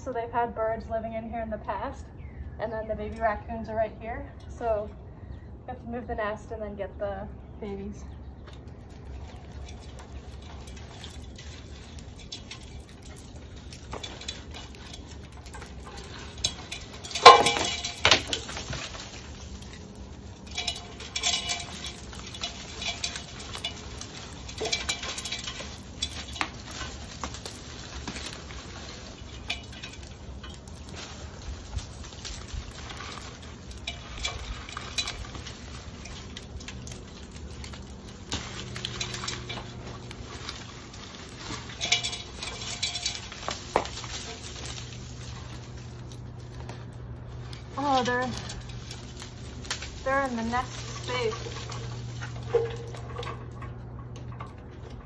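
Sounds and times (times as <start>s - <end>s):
straw rustling and scraping: 7.6s - 55.0s.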